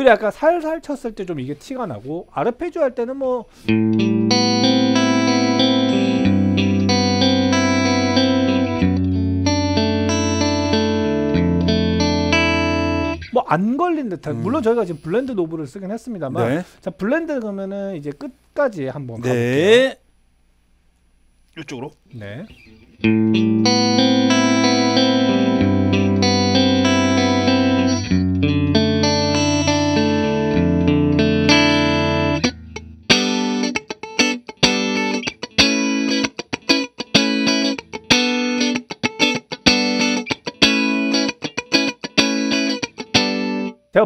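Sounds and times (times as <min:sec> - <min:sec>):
compressed electric guitar chords: 0:03.6 - 0:13.4, 0:22.5 - 0:43.9.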